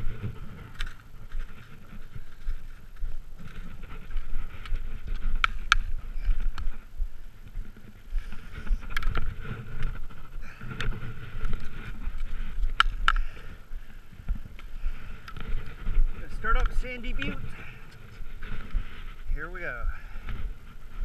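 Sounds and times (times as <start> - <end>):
ski poles clicking in snow: 0.0 - 19.3.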